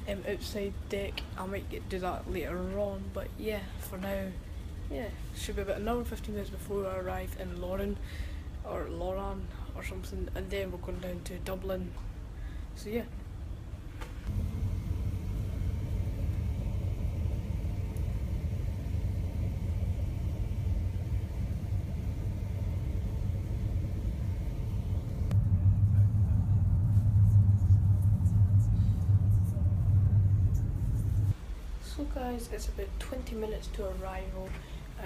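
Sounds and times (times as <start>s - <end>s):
ferry engine rumble: 14.2s - 32.4s.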